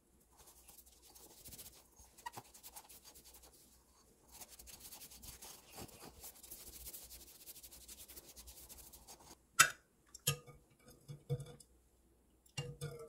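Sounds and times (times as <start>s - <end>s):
cloth rubbing ceramic teapot: 0.4s - 9.3s.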